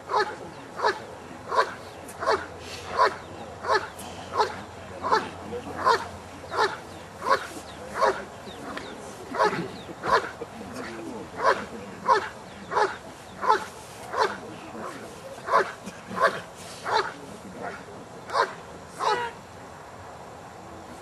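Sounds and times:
dog barking: 0.1s - 2.4s, 3.0s - 3.8s, 18.3s - 19.2s.

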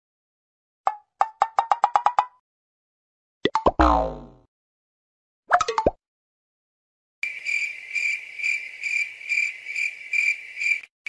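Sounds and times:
cartoon pops: 3.4s - 4.5s.

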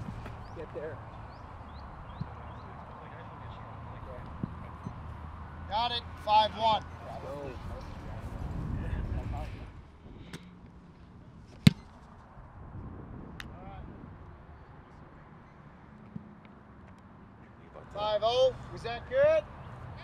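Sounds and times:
foot kicking football: 11.5s - 12.1s.

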